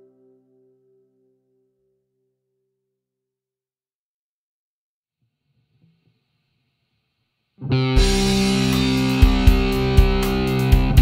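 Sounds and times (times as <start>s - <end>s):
distorted electric guitar chord: 7.6s - 11.0s
heavy drum beats: 8.0s - 11.0s.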